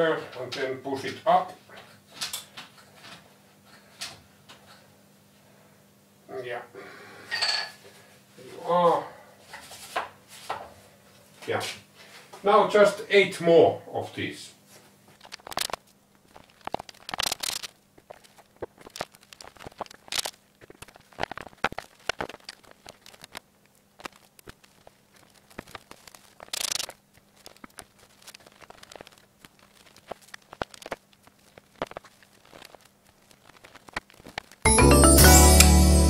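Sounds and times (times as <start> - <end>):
loud music: 34.7 - 36.0.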